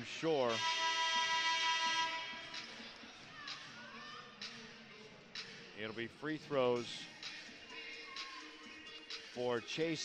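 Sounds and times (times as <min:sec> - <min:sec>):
steady held tone: 0:00.5 - 0:02.7.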